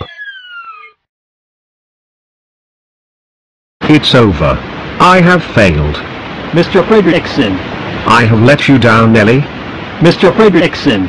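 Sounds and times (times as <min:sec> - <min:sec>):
cartoon falling whistle: 0:00.0 - 0:01.0.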